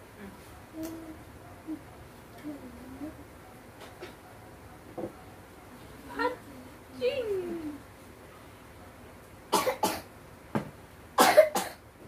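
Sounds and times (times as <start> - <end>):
person coughing: 11.2 - 11.8.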